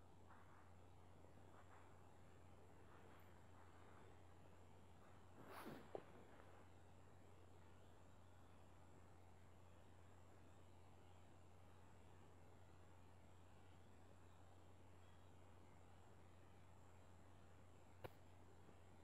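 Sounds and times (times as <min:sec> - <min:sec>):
faint steady hum: 0:00.0 - 0:19.0
soft rush: 0:01.4 - 0:06.8.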